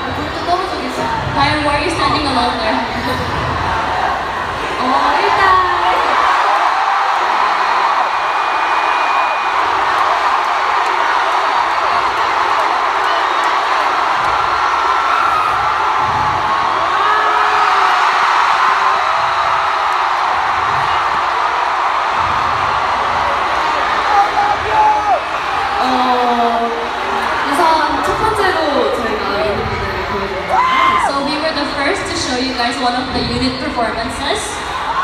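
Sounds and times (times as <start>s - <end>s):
crowd cheering and screaming: 0.4s - 33.3s, 34.0s - 35.0s.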